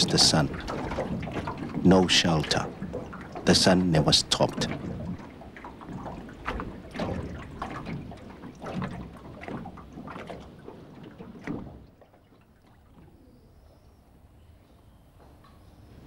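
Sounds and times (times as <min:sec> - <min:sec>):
water lapping against boat hull: 0:00.0 - 0:14.4.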